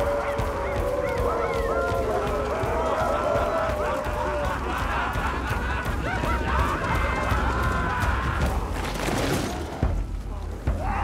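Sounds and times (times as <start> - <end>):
men howling and calling: 0.0 - 11.0.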